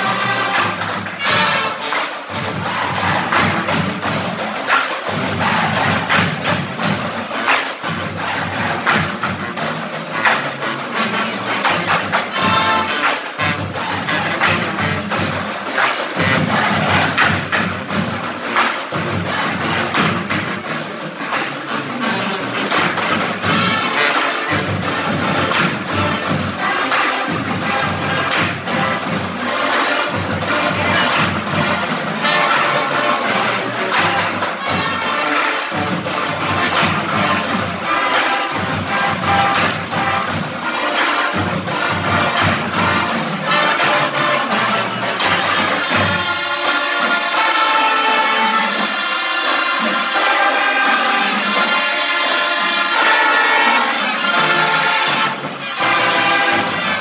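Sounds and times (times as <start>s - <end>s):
brass and sousaphones: 0.0s - 57.0s
drumline beat: 0.0s - 57.0s.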